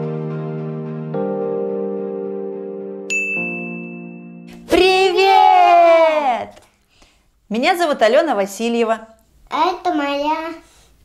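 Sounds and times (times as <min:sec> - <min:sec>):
bright electronic ding: 0:03.1 - 0:04.6.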